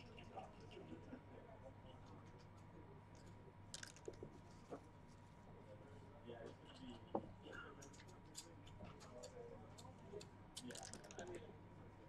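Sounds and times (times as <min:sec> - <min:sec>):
murmur of voices: 0:00.0 - 0:12.0
dice rattling: 0:03.8 - 0:04.2.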